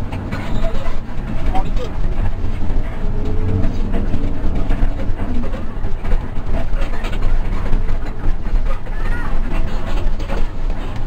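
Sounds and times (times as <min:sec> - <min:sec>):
bus body rattling: 0:00.0 - 0:11.0
bus engine rumble: 0:00.0 - 0:11.0.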